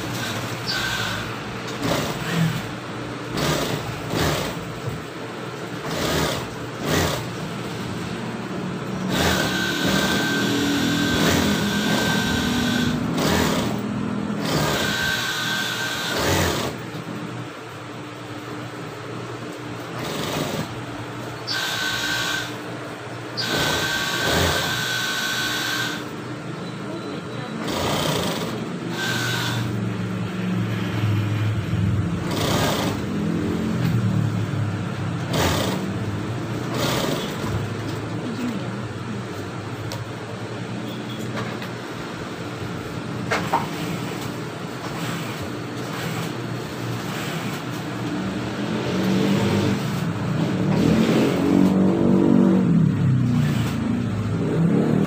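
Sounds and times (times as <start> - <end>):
motor whine: 0.0 - 2.6, 8.7 - 16.8, 21.4 - 22.7, 23.3 - 26.2, 27.7 - 35.8
sewing machine stitching: 0.0 - 2.7, 3.3 - 5.0, 5.8 - 7.8, 9.0 - 13.8, 14.4 - 16.9, 19.9 - 20.8, 23.4 - 26.1, 27.6 - 29.8, 32.2 - 33.2, 35.2 - 36.0, 36.6 - 38.0, 43.7 - 46.4, 47.0 - 47.8.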